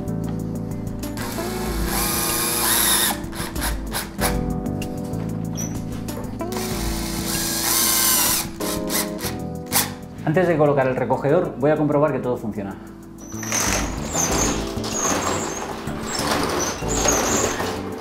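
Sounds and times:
background music: 0.0s - 18.0s
cordless drill driving screw: 1.2s - 4.1s, 6.6s - 10.0s.

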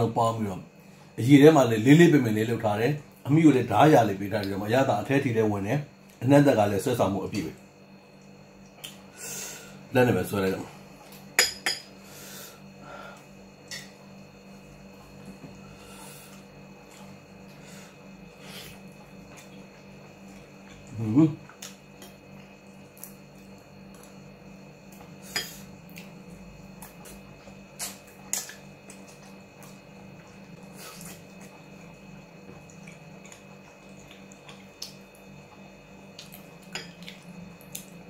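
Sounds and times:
steady low hum: 0.0s - 38.0s
spoon clinking against glass bowl: 11.4s - 11.9s
man chewing: 24.9s - 38.0s.

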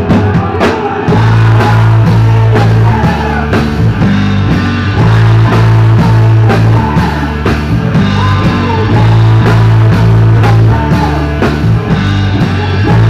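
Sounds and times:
rock band playing loud: 0.0s - 13.0s
woman singing into microphone: 5.0s - 7.4s, 8.0s - 11.4s.

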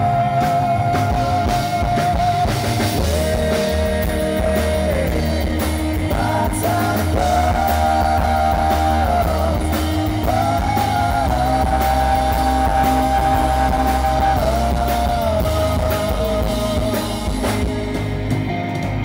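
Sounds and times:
live rock band playing: 0.0s - 19.0s
sliding lead guitar notes: 0.0s - 19.0s.

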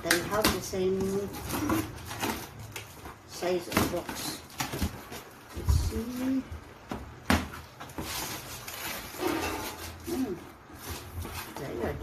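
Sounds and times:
packaging rustling: 0.0s - 6.6s, 7.4s - 12.0s.

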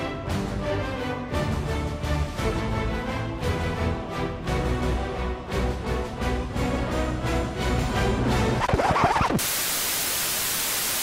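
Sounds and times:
music: 0.0s - 9.4s
television static hiss: 8.6s - 11.0s.

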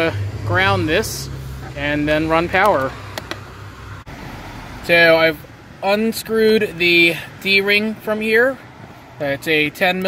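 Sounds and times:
man talking: 0.0s - 3.0s, 4.8s - 8.6s, 9.2s - 10.0s.

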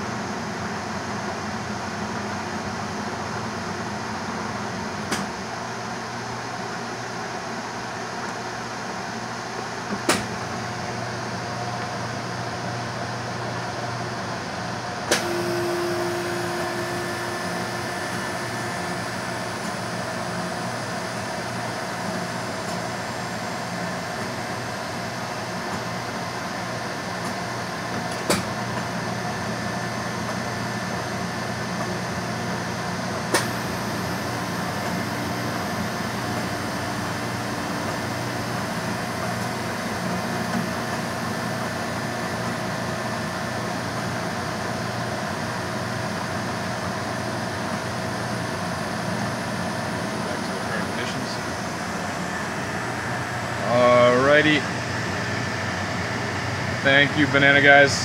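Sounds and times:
soft serve machine humming: 0.6s - 58.0s.

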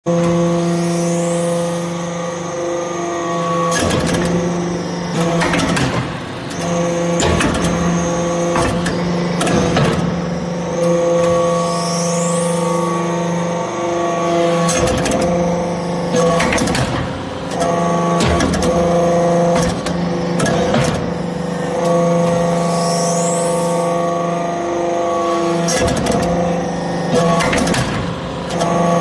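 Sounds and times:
hydraulic unit humming: 0.1s - 29.0s.

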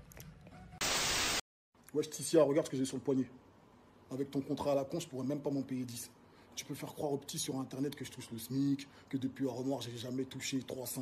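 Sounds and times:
white-noise static burst: 0.8s - 1.4s.

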